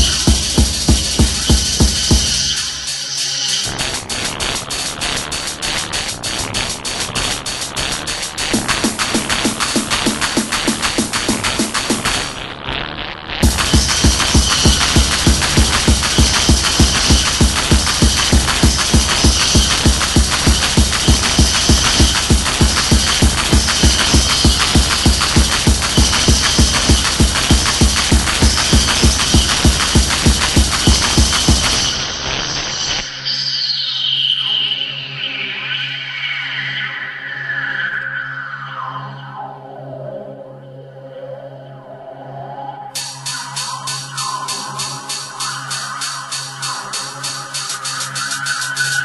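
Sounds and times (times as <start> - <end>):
fast pounding kick drum: 0.0 - 2.6, 3.7 - 12.3, 13.4 - 32.0
synth layer: 0.0 - 12.8, 13.4 - 49.0.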